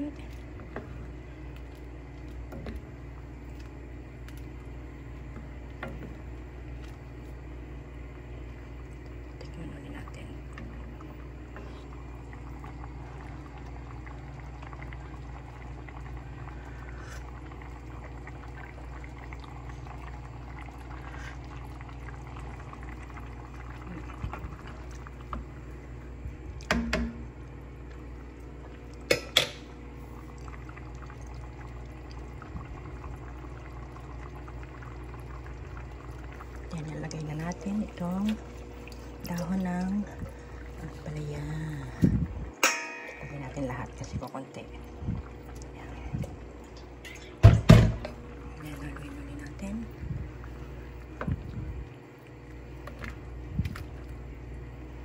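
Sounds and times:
soup bubbling in a pot: 0:00.0 - 0:55.0.

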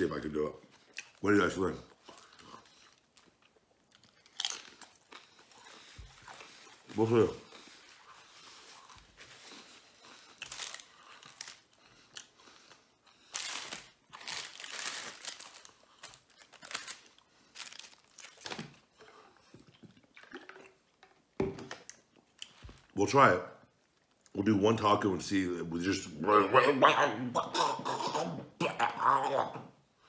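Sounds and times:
crunching and chewing taco: 0:00.8 - 0:21.0
paper wrappers crinkling: 0:04.1 - 0:12.2, 0:13.2 - 0:18.8.

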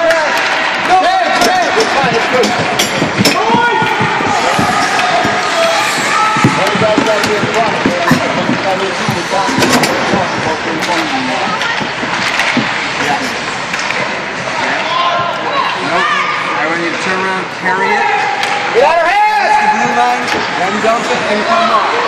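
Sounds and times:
voices shouting: 0:00.0 - 0:08.4
hockey sticks and puck clacking: 0:00.0 - 0:14.9, 0:18.3 - 0:18.7, 0:19.7 - 0:21.2
hits against rink boards: 0:00.4 - 0:12.9.

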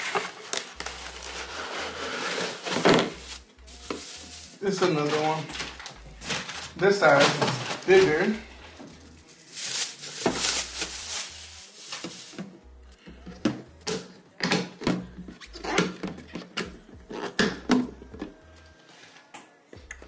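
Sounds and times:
plastic bag crinkling: 0:00.0 - 0:08.3, 0:09.2 - 0:12.5.

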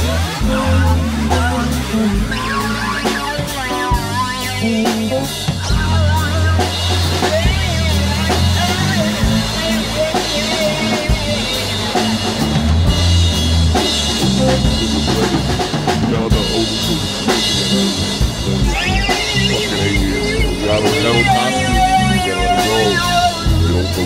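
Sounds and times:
bass guitar: 0:00.0 - 0:24.0
drum kit: 0:00.0 - 0:24.0
electric guitar: 0:00.0 - 0:24.0
theremin lead line: 0:00.3 - 0:24.0.

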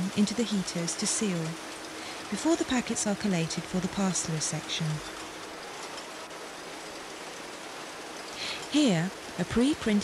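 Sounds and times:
steady hiss-like noise: 0:00.0 - 0:10.0.

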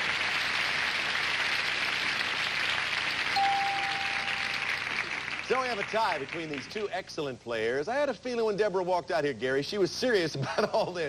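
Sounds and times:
audience applauding: 0:00.0 - 0:06.9.

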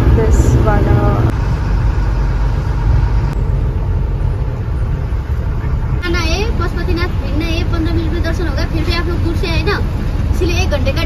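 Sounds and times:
woman talking: 0:00.0 - 0:01.3
bus engine and road rumble: 0:00.0 - 0:11.0.

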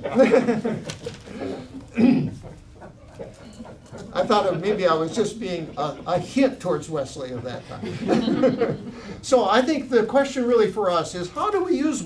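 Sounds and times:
man chuckling: 0:00.0 - 0:09.2
faint breathing: 0:08.8 - 0:09.3.

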